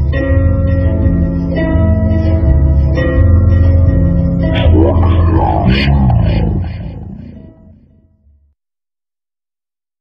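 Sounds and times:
low rumble: 4.5s - 7.9s.

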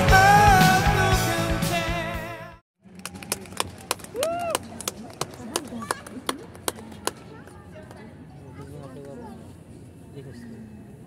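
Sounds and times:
music: 0.0s - 2.6s.

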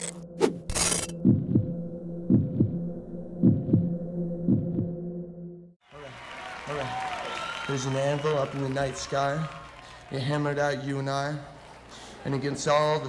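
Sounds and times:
heartbeat thumps: 1.1s - 5.0s.

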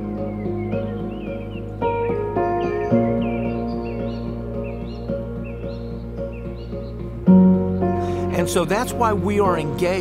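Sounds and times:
bird chirps: 0.0s - 8.4s
soft sustained chords: 0.0s - 10.0s.

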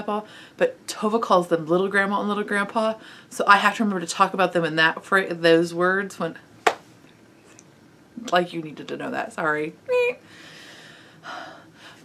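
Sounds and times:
woman breathing: 0.3s - 0.6s, 10.2s - 12.0s.

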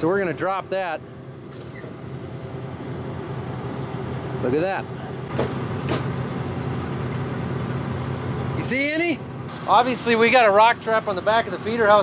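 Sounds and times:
combine engine idling: 0.0s - 12.0s.

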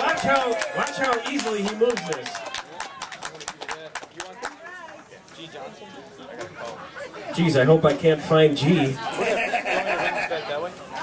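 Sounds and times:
crowd clapping: 0.0s - 5.1s
crowd voices: 0.0s - 11.0s.

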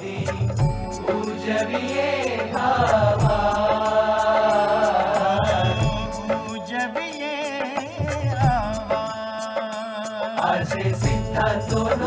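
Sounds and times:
light percussion beat: 0.0s - 12.0s.

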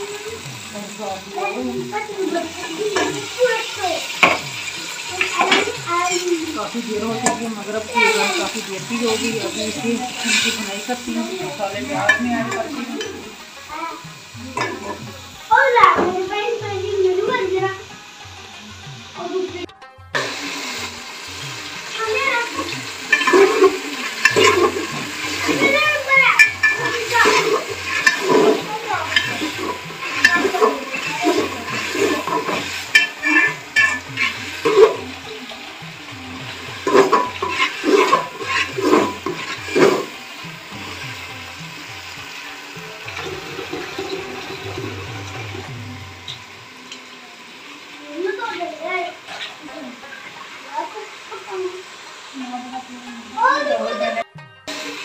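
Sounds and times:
pots and utensils clattering: 0.0s - 16.5s, 20.2s - 47.2s, 48.5s - 51.0s
tap water running into sink: 0.0s - 18.0s, 20.2s - 47.3s.

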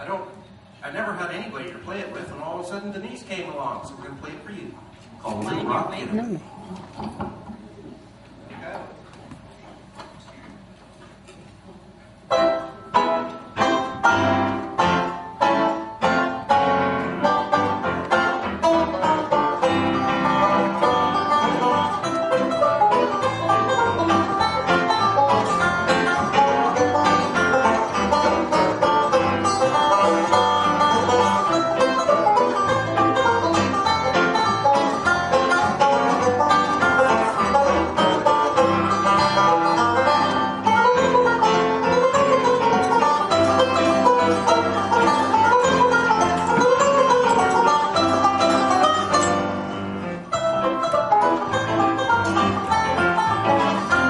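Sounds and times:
piano playing swing: 12.2s - 54.0s
banjo picking: 12.3s - 54.0s.

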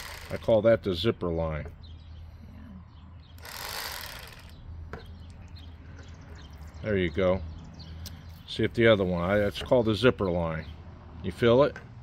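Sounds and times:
electric knife humming: 0.0s - 0.4s, 3.4s - 4.5s.

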